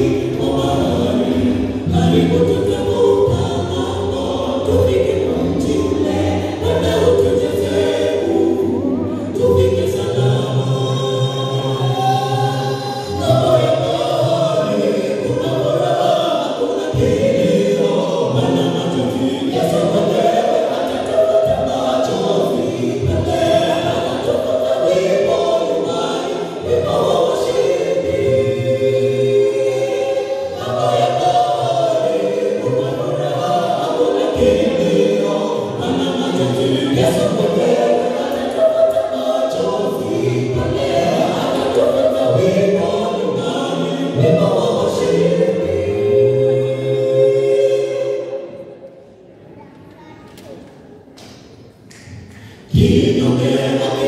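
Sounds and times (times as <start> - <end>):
group singing gospel in harmony: 0.0 - 49.3, 51.3 - 54.0.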